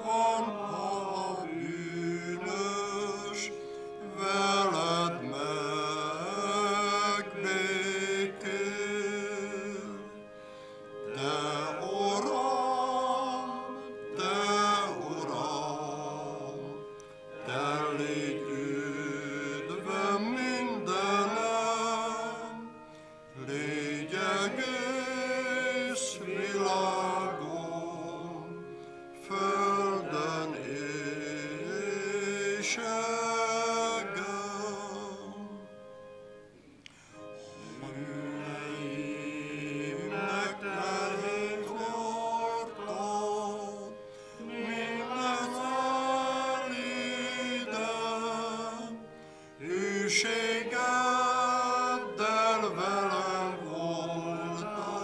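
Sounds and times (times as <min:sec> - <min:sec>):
keyboard accompaniment: 0:00.0 - 0:55.0
voices singing a hymn: 0:00.0 - 0:55.0.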